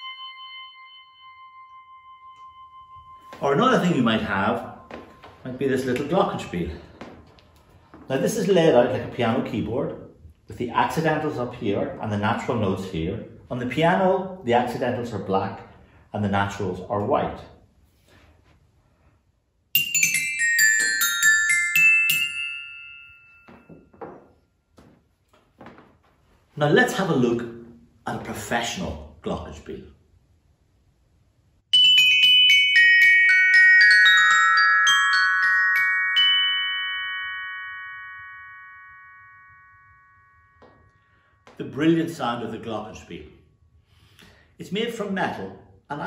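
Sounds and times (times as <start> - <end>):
glockenspiel notes struck with mallet: 0.0 - 6.5, 19.8 - 24.3, 31.7 - 41.8.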